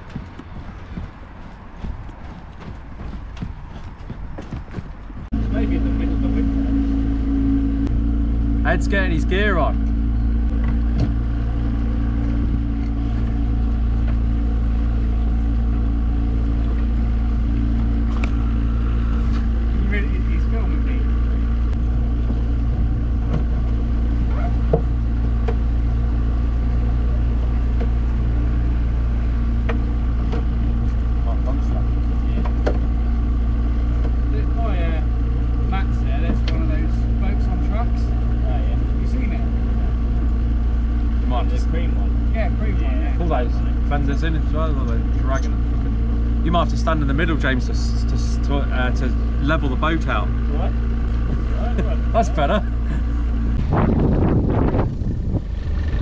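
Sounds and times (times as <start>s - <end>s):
outboard motor running: 0.0s - 56.0s.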